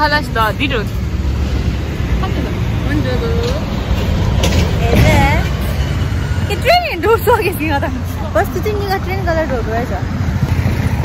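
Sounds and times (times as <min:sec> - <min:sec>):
bus engine rumble: 0:00.0 - 0:11.0
street traffic: 0:00.0 - 0:11.0
people talking: 0:02.2 - 0:03.7, 0:04.8 - 0:05.7, 0:06.4 - 0:10.1.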